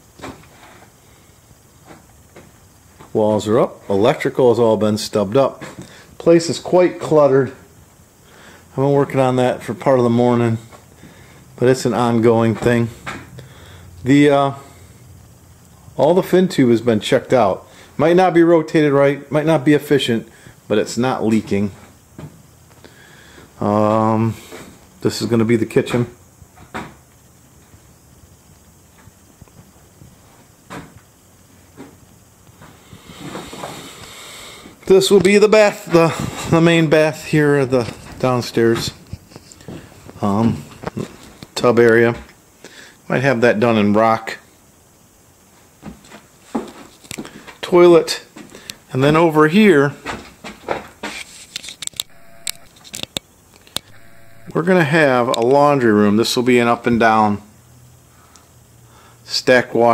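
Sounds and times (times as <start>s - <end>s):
faint room hiss: 0.0s - 59.9s
faint short tone: 52.1s - 52.7s, 53.8s - 54.6s.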